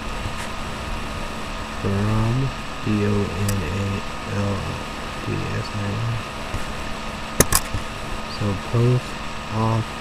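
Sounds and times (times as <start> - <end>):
steady low hum: 0.0 - 10.0
man spelling out letters: 1.8 - 6.2, 8.3 - 10.0.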